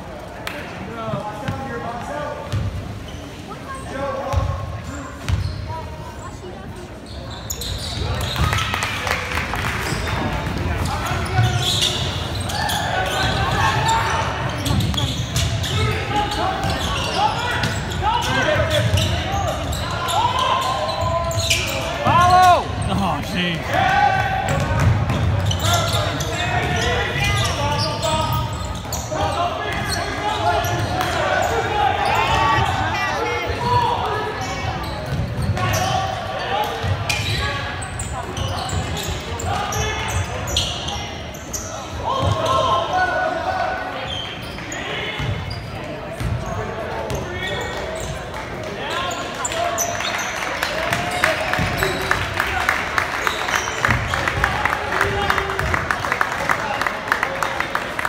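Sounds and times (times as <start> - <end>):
crowd and players shouting: 8.0 - 45.5.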